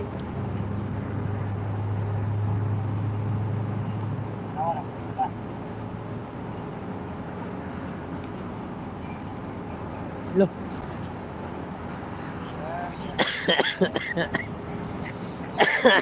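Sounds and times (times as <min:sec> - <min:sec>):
distant voices: 0:00.0 - 0:16.0
low vehicle hum: 0:00.0 - 0:16.0.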